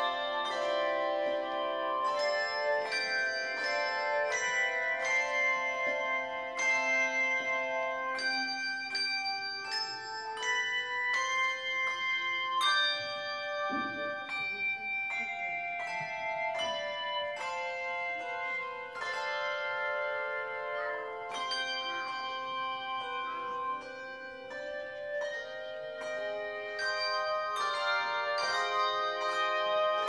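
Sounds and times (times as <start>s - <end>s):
handbell choir playing: 0.0s - 30.0s.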